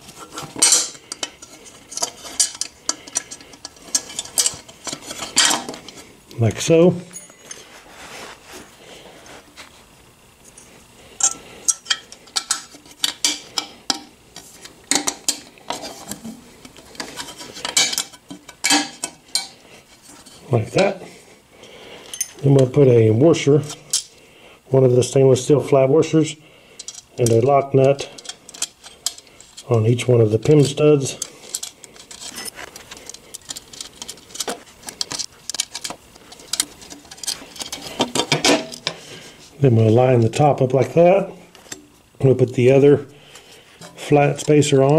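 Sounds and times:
metal washers and nuts clicking: 0.2 - 6.0, 11.2 - 19.6, 26.8 - 39.0.

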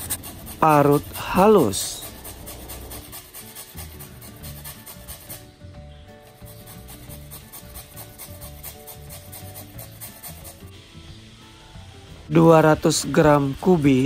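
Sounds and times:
carrot grated on metal grater: 0.0 - 5.5, 6.3 - 10.7
background music: 0.0 - 14.0.

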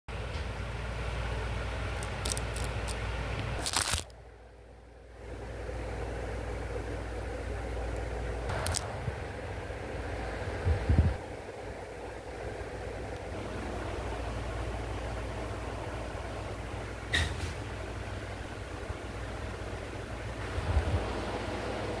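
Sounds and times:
low background hum: 0.1 - 22.0.

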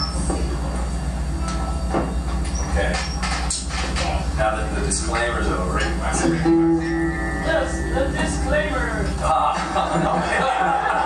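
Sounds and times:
low electrical hum: 0.0 - 11.0
people talking: 2.7 - 6.6, 7.4 - 11.0.

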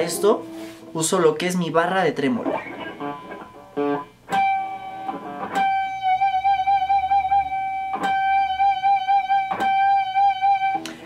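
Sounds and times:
electric guitar harmonic with vibrato: 2.4 - 11.0.

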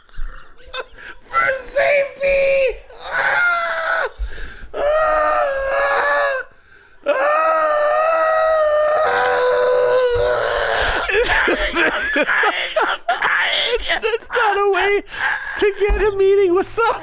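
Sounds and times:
men shrieking with laughter: 0.0 - 4.2, 4.8 - 15.9.

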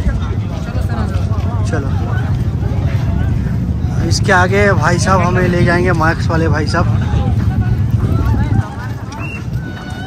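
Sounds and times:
crowd voices chattering: 0.0 - 10.0
steady low rumble: 0.0 - 10.0.

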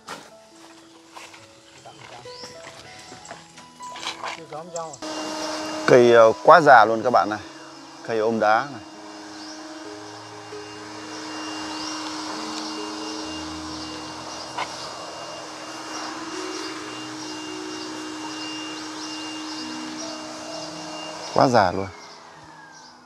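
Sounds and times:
electric leaf blower running: 5.0 - 23.0.

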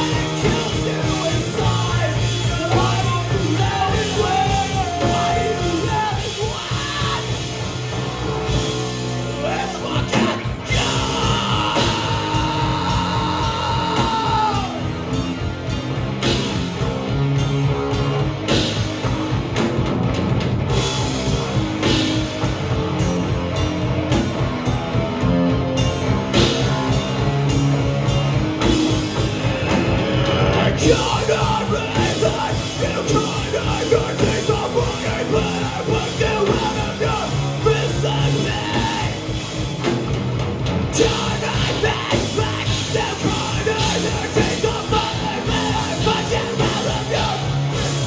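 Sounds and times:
vocals: 0.0 - 15.4, 29.0 - 40.2, 40.8 - 48.0
heavy rock band playing: 0.0 - 48.0.

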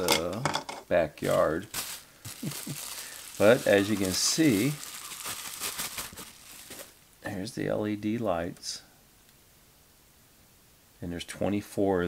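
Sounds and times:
packaging crinkling and rustling: 1.2 - 7.0.

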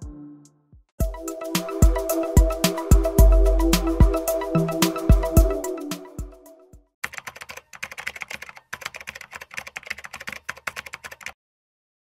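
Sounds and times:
intro music: 0.0 - 6.8
rapid keyboard typing: 7.0 - 11.4.

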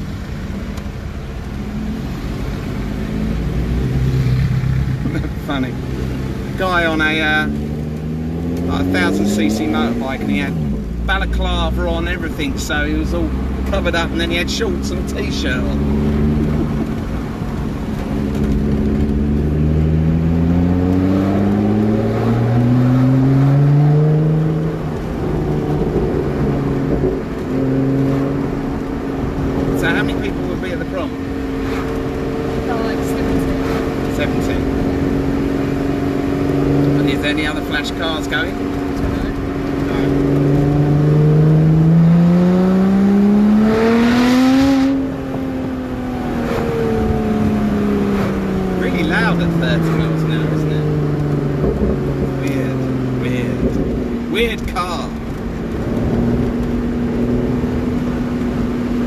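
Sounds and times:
car engine revving: 0.0 - 59.0.

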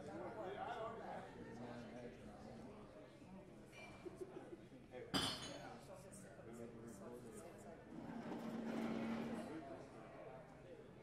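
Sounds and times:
murmur of audience chatter: 0.0 - 11.0
glass clink: 5.2 - 5.6.

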